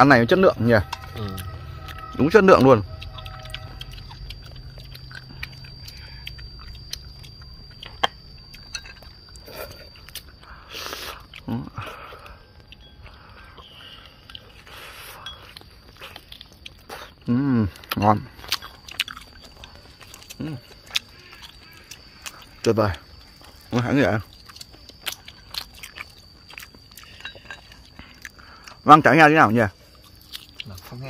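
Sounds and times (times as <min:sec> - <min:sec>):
people chewing meat: 0:00.0 - 0:31.0.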